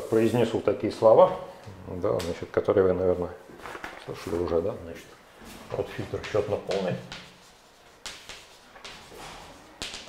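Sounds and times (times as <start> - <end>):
chalk scratching on blackboard: 6.2 - 10.0.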